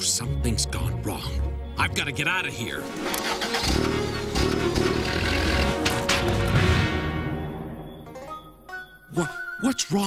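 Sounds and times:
cartoon car engine starting: 0:02.9 - 0:06.8.

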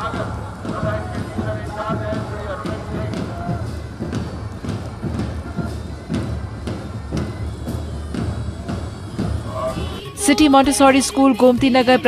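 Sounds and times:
marching band drums beating: 0:00.0 - 0:12.0.

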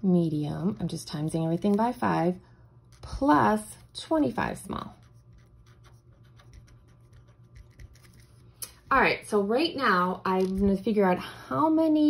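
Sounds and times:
marker writing on paper: 0:04.8 - 0:08.4.

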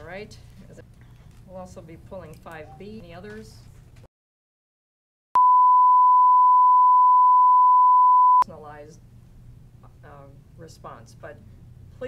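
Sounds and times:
steady pure test tone beep: 0:05.4 - 0:08.4.

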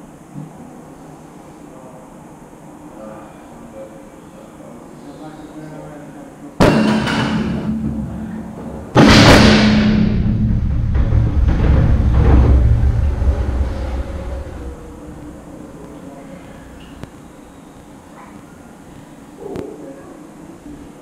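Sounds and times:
low rumble: 0:09.0 - 0:16.2.

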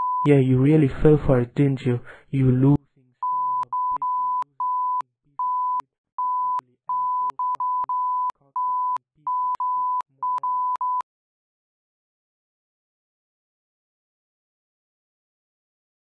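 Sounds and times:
censor beep tone: 0:00.0 - 0:00.3, 0:03.2 - 0:11.0.

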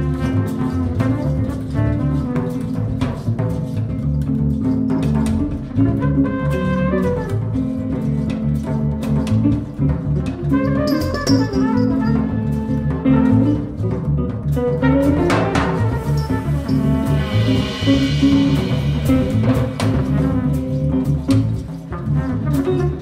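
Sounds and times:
bass line: 0:00.0 - 0:23.0
drum kit with cymbal strikes: 0:00.0 - 0:23.0
jazz band playing: 0:00.0 - 0:23.0.

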